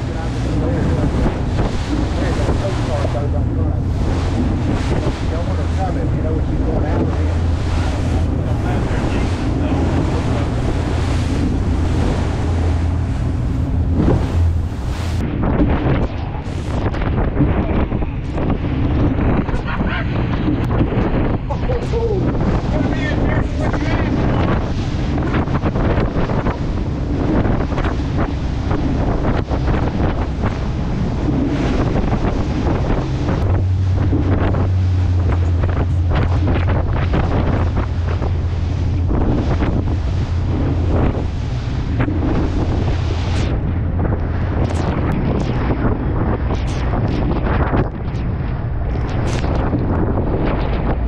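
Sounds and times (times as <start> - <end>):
steady low drone: 0.0 - 51.0
water splashes: 0.0 - 51.0
waves breaking along hull: 0.0 - 51.0
wind buffeting microphone: 0.0 - 51.0.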